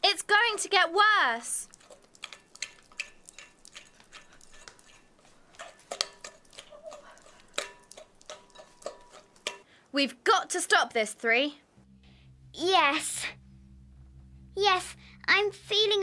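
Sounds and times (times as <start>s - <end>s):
utensil stirring in glass bowl: 1.6s - 9.6s.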